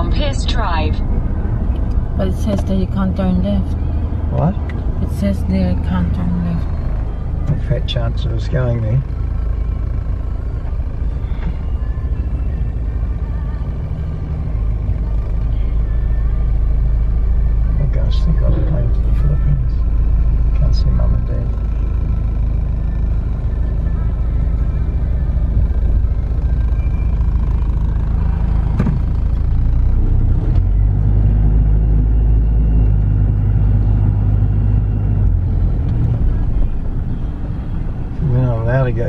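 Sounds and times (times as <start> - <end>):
car engine and road rumble: 0.0 - 39.0.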